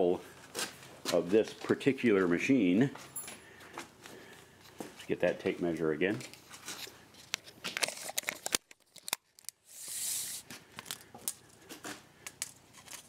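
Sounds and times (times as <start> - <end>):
tape measure rasping hiss: 9.6 - 10.5.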